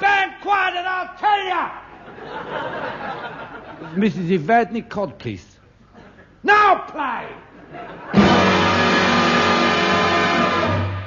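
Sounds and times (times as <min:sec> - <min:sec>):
band playing sustained chord: 0:08.2 - 0:11.0.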